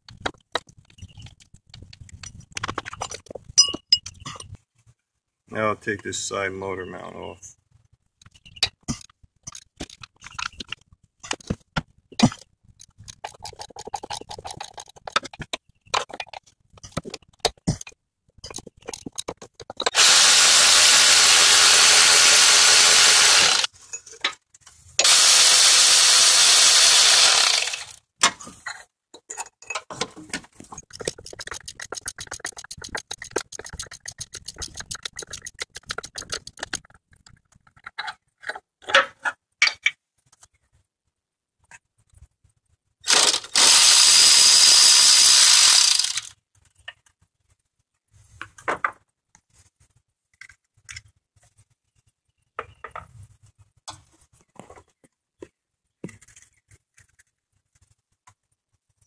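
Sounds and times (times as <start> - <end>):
loose metal clinks: 2.2 - 4.6
electric impact driver running: 19.9 - 23.7, 25.0 - 28.0, 43.1 - 46.3
ratchet wrench clicking rapidly: 19.9 - 23.7, 25.0 - 28.0, 30.8 - 37.0, 43.1 - 46.3.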